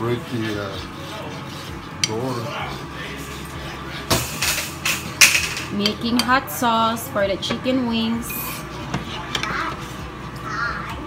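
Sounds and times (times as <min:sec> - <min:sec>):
utensil scraping metal skillet: 0:00.0 - 0:06.9, 0:07.6 - 0:10.8
steady low hum: 0:00.0 - 0:11.0.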